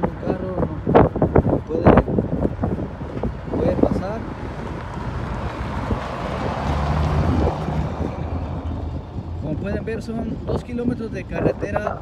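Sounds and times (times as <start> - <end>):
car engine hum: 0.0 - 12.0
road noise on broken asphalt: 0.0 - 12.0
wind on microphone: 0.0 - 12.0.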